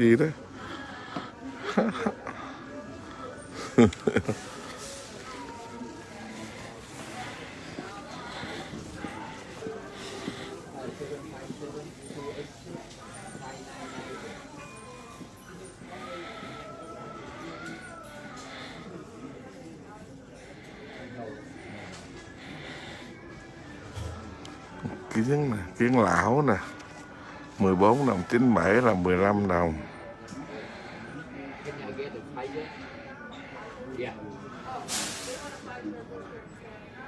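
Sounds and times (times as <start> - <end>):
faint background voices: 0.0 - 37.0
store background noise: 0.0 - 37.0
short loud hiss: 34.9 - 35.5.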